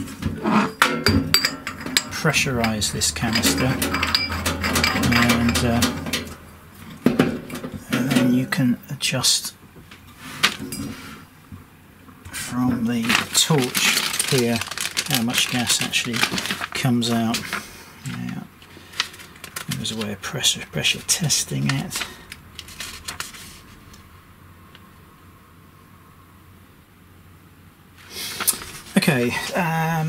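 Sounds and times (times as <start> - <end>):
faint handling noise: 0.0 - 8.6, 9.7 - 20.3, 20.9 - 24.0
sharp metallic clink: 0.9 - 6.5.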